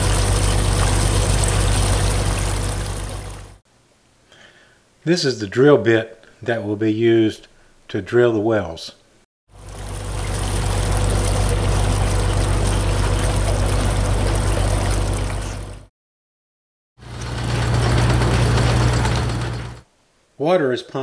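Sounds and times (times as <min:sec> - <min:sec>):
drilling rig engine running: 0:00.0 - 0:03.6, 0:09.6 - 0:15.9, 0:17.0 - 0:19.8
water gushing from a hose: 0:00.0 - 0:03.6, 0:09.5 - 0:15.9.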